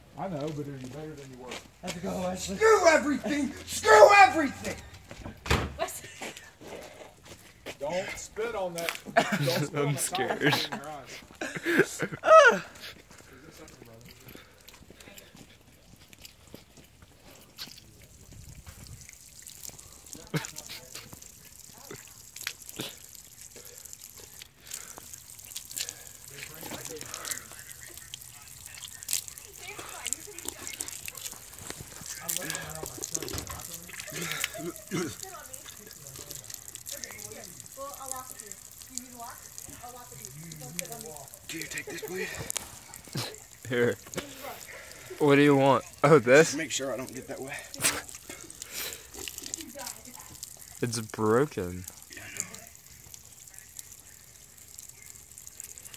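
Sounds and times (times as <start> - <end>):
water trickling from tap: 1.7 - 6.6, 7.3 - 55.9.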